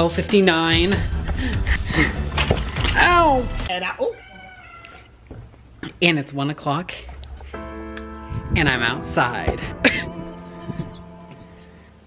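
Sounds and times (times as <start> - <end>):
cat meowing: 4.0 - 5.2
soft knocks: 5.2 - 5.7.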